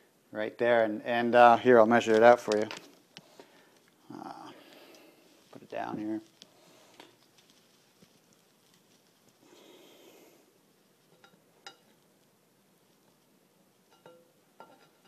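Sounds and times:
soft rustle: 0:01.6 - 0:15.0.

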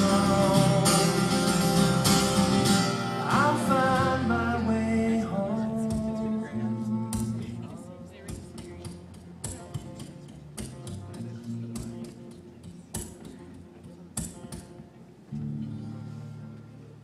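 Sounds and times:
acoustic guitar strummed chords: 0:00.0 - 0:17.0.

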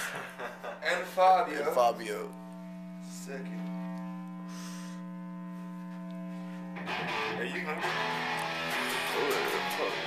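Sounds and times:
short breath: 0:04.5 - 0:05.1.

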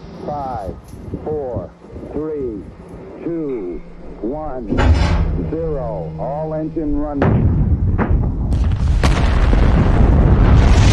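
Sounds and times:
rocket engine rumble: 0:00.0 - 0:10.9.

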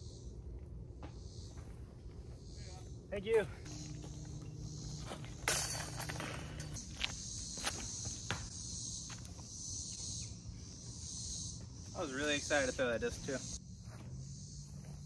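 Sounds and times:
high insect chorus: 0:00.0 - 0:15.0.

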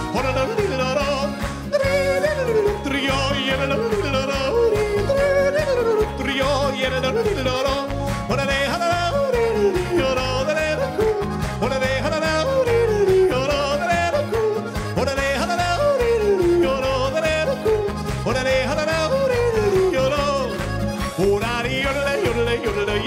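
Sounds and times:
live band with guitar and bass: 0:00.0 - 0:23.0
man yodeling into a microphone: 0:00.0 - 0:23.0.

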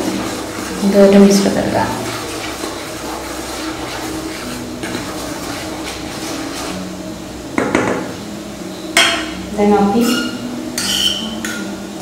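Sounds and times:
spoon stirring flour in bowl: 0:00.0 - 0:06.8.

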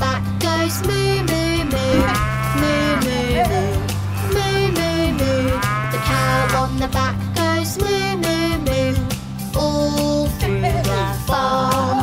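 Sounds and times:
bouncy children's song music: 0:00.0 - 0:12.0
cartoon cow mooing: 0:00.9 - 0:06.8.

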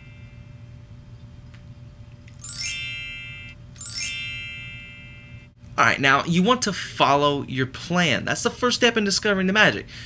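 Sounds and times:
faint steady hum: 0:00.0 - 0:10.0
sparkling magic chime: 0:02.4 - 0:05.5.

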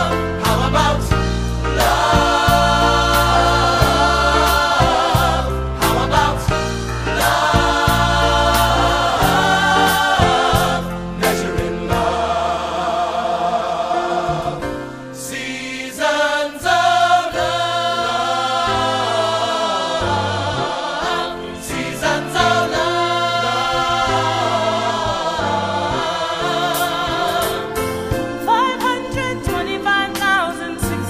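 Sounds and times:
band accompaniment: 0:00.0 - 0:14.8, 0:20.4 - 0:31.0
choir singing gospel ballad: 0:00.0 - 0:31.0.

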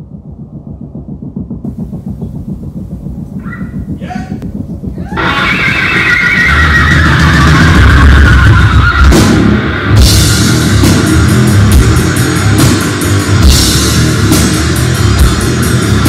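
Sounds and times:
low pulsing rumble: 0:00.0 - 0:16.0
loud distorted noise swell: 0:01.6 - 0:16.0.

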